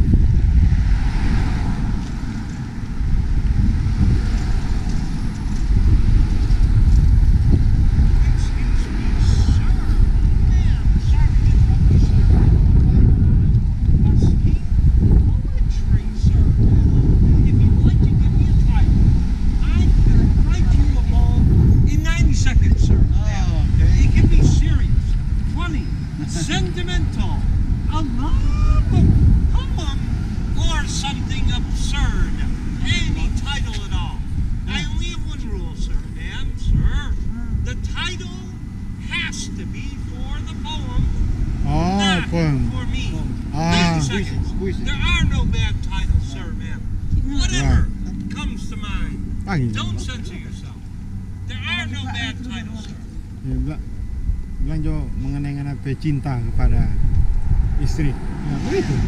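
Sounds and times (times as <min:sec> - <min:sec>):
low rumble: 0:00.0 - 0:59.0
people chattering: 0:26.1 - 0:27.1, 0:41.6 - 0:45.0, 0:46.4 - 0:50.8.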